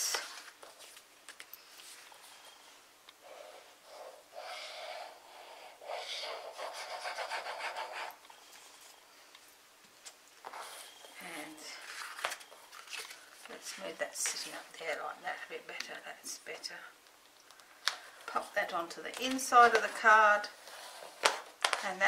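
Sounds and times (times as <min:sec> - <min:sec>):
glue tip scratching on cardstock: 0:05.9 - 0:08.2.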